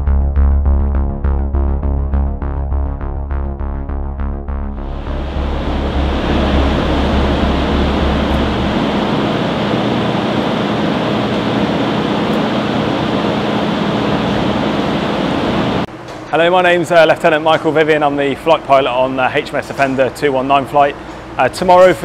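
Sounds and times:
deep rumble: 0.0 - 15.9
steady wind: 4.8 - 15.9
machinery noise: 4.8 - 16.2
faint hum: 4.8 - 22.0.

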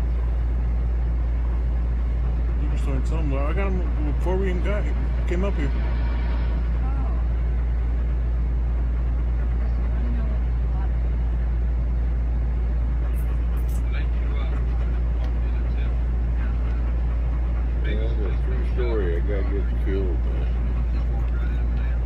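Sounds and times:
low rumble in vehicle cabin: 0.0 - 22.0
people talking: 2.6 - 5.8, 6.8 - 7.3, 9.6 - 11.3, 13.2 - 22.0.

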